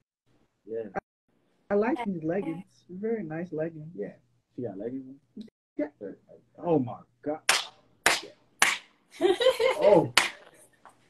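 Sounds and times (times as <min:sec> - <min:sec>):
hand claps: 0:07.5 - 0:09.0, 0:09.9 - 0:11.0.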